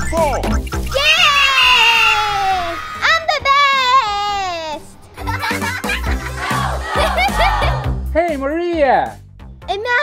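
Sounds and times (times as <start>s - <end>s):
girl's long cheering yells: 0.9s - 4.4s, 6.7s - 7.9s.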